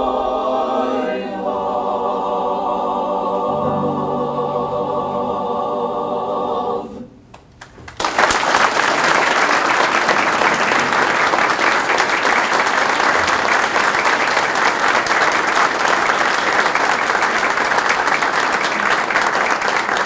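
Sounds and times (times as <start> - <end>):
audience applause: 7.6 - 20.0.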